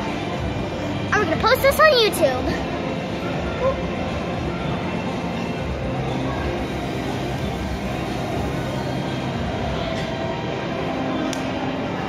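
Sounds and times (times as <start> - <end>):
indoor trampoline park din: 0.0 - 12.0.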